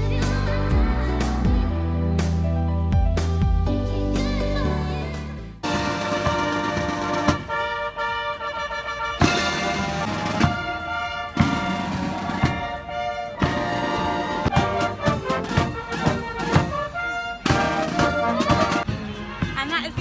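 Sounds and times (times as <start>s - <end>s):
strong drum beats: 5.6s - 8.0s, 9.1s - 20.0s
military marching band: 5.6s - 20.0s.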